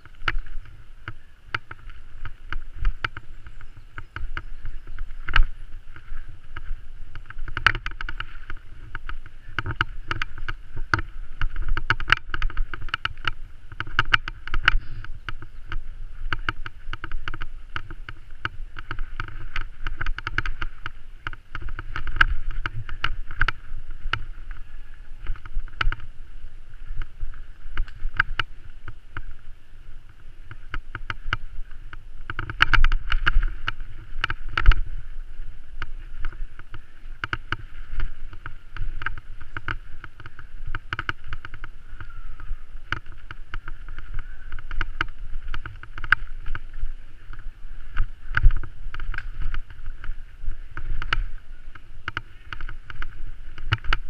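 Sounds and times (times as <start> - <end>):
bike rattling over rough ground: 0.0 - 54.0
rolling tyre noise: 0.0 - 54.0.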